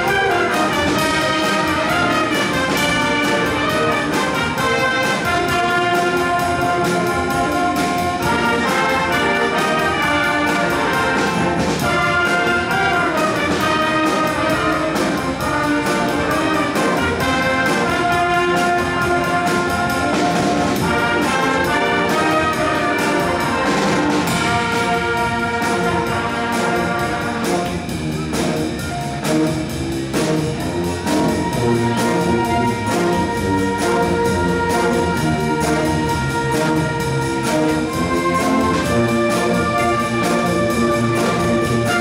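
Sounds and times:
trumpets holding brass notes: 0.0s - 27.9s, 30.4s - 42.0s
drum kit beat: 0.0s - 42.0s.

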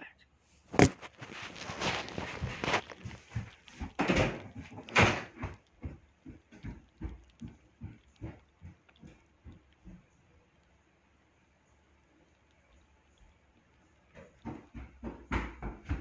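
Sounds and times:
phone handling rustles and knocks: 0.7s - 5.5s
footsteps walking away: 0.7s - 10.4s, 12.8s - 16.0s.

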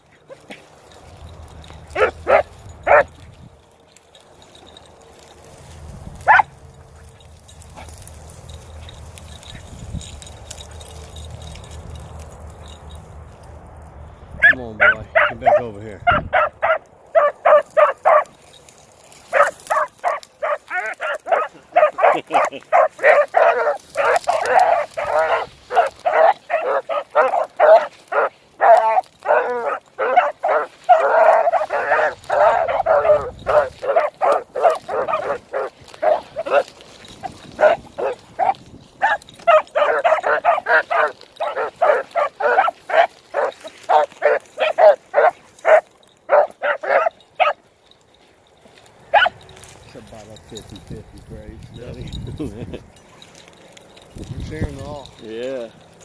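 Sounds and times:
dog barking rapidly: 2.0s - 3.2s, 6.2s - 6.5s, 14.4s - 18.4s, 19.3s - 47.6s, 49.1s - 49.4s.

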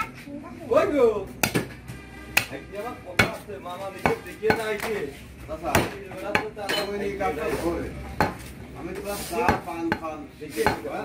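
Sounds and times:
cleaver chopping meat on wood: 1.4s - 3.4s, 4.0s - 5.0s, 5.6s - 6.7s, 8.2s - 8.5s, 9.4s - 11.0s.

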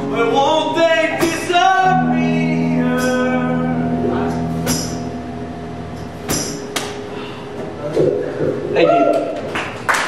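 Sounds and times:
electric guitars ringing: 0.0s - 9.5s.

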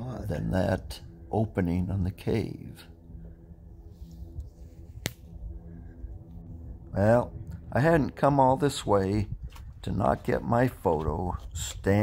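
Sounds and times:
wind buffeting microphone: 3.1s - 12.0s.

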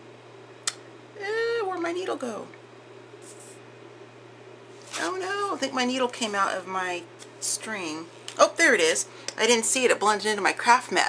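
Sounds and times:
steady low hum: 0.0s - 11.0s
hand brushing over paper: 3.2s - 3.6s.

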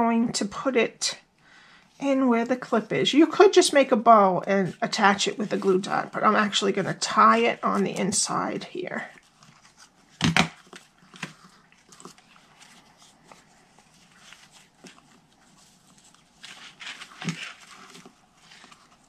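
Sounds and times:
ribbon handling rustle: 2.7s - 19.0s.

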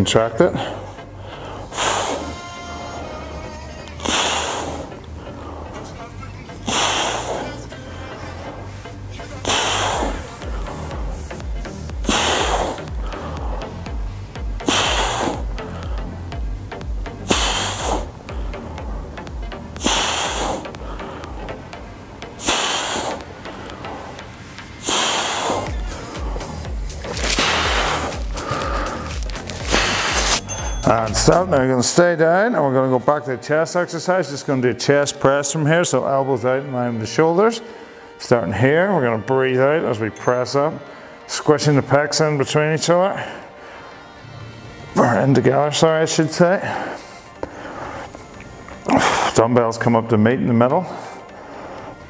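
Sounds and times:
background music with steady beat: 0.0s - 52.0s
man breathing out hard: 6.6s - 7.6s, 9.4s - 11.3s, 12.0s - 16.4s, 17.1s - 21.6s, 22.4s - 24.2s, 24.8s - 30.4s.

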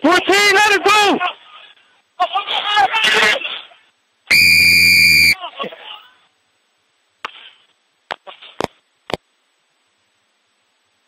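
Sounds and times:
referee's whistle blast: 4.3s - 5.4s.

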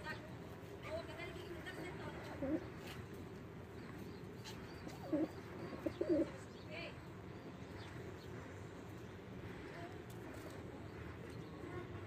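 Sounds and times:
pigeons cooing: 4.3s - 6.5s.

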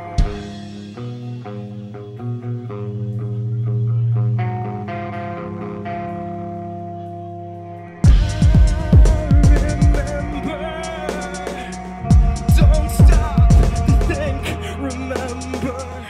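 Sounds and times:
bass guitar sustained notes: 0.0s - 16.0s
electric guitar sustained notes: 0.0s - 16.0s.

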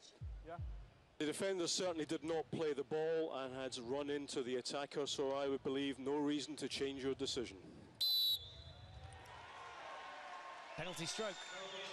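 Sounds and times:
sharp whistle blast: 8.0s - 8.9s.

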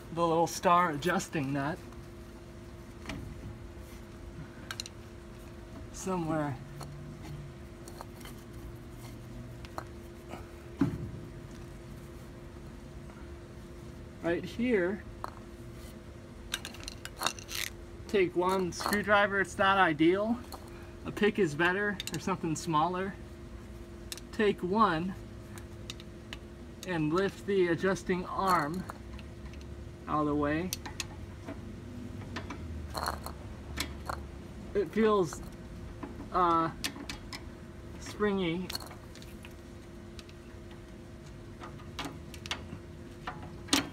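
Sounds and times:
faint hum: 0.0s - 43.9s.

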